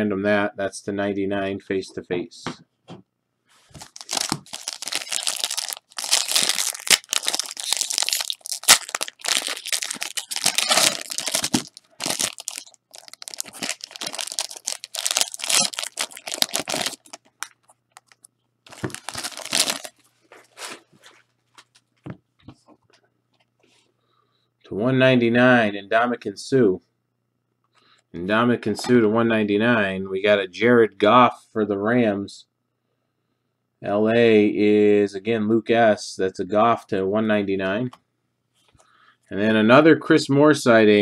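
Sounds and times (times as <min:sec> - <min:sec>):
foil wrapper tearing and crinkling: 0:03.8 - 0:20.8.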